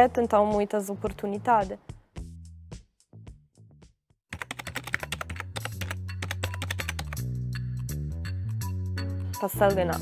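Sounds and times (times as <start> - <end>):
upbeat music with clicking percussion: 4.3 - 10.0.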